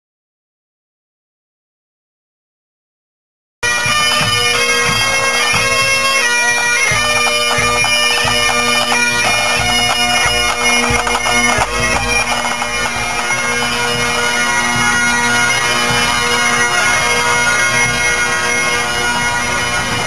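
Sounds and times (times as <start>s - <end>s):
bagpipes: 3.6s - 20.0s
snare and bass drums: 6.9s - 13.6s.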